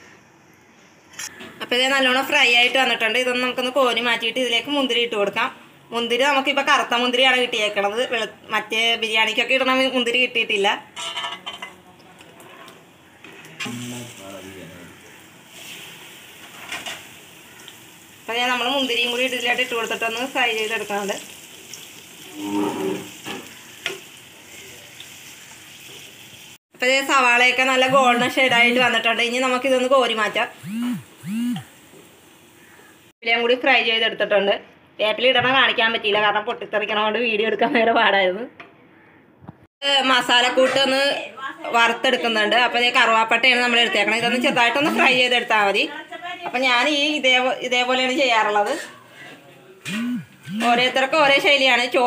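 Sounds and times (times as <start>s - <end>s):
woman's voice in pitched phrases: 1.6s - 10.9s, 18.3s - 21.2s, 26.8s - 31.6s, 39.8s - 49.1s, 49.9s - 52.0s
oil sizzling in a frying pan: 13.6s - 26.6s, 27.7s - 33.1s
low hummed tones: 30.6s - 31.6s, 49.9s - 50.8s.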